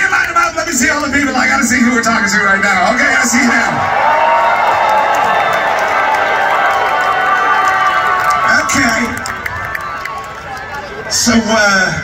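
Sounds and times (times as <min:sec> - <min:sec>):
crowd cheering and screaming: 0:03.0 - 0:11.2.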